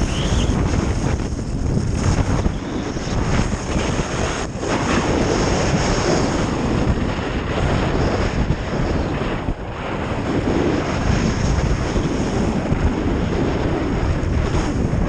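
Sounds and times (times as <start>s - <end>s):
skis scraping hard snow: 0.0s - 9.3s
wind rushing over microphone: 0.0s - 15.0s.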